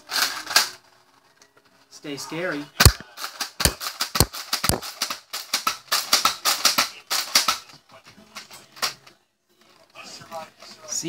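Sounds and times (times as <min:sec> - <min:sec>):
plastic blaster thumps: 0:02.8 - 0:07.6
plastic clicks and rattles: 0:02.8 - 0:07.7.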